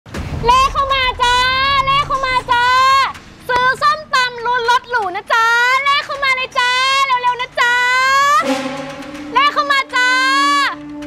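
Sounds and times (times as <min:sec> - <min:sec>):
woman shouting high calls: 0:09.3 - 0:10.8.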